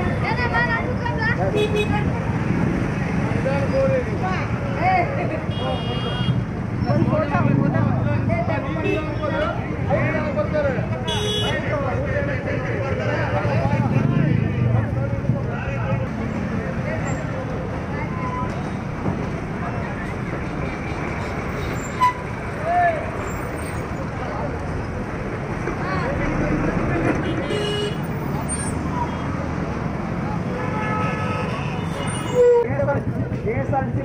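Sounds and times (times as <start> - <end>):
many voices talking: 0.0 - 34.0
vehicle engines and traffic: 0.0 - 34.0
car horn toots: 11.1 - 11.6.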